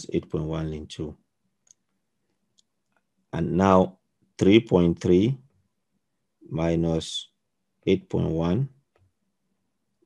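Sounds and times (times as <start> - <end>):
person speaking: 0.0 - 1.2, 3.3 - 5.5, 6.4 - 8.9.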